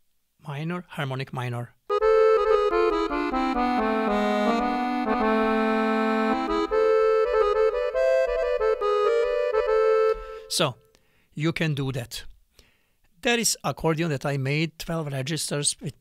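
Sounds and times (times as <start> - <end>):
accordion playing slow minor phrase: 1.9 - 10.6.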